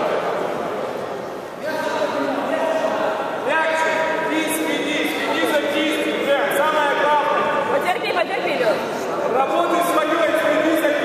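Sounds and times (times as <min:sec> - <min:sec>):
men's voices talking: 0:01.6 - 0:08.0, 0:09.0 - 0:11.0.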